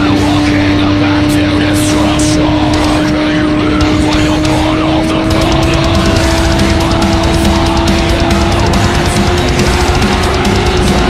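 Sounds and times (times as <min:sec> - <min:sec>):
motorcycle engine at high rpm: 0:00.0 - 0:11.0
rock music: 0:00.0 - 0:11.0.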